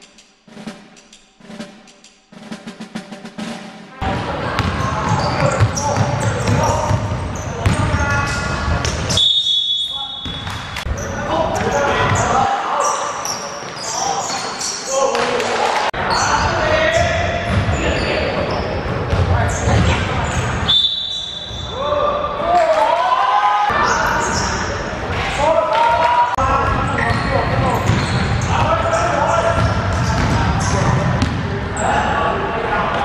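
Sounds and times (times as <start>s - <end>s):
referee whistle blast: 9.1s - 10.5s, 20.7s - 21.7s.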